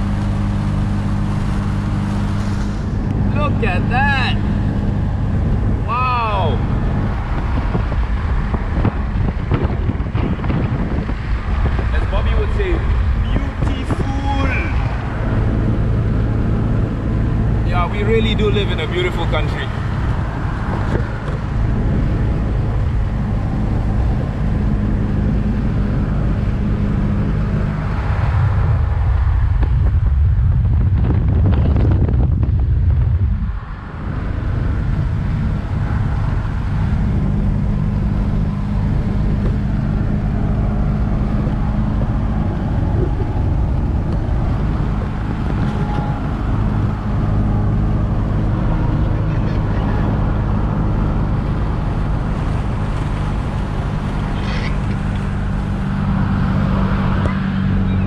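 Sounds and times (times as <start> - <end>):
car engine cruising: 0.0 - 58.0
road and wind noise: 0.0 - 58.0.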